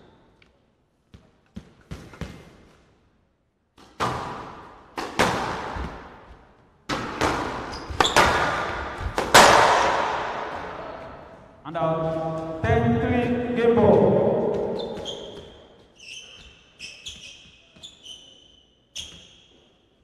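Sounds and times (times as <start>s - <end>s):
squash ball cracking off rackets: 6.9s - 10.7s.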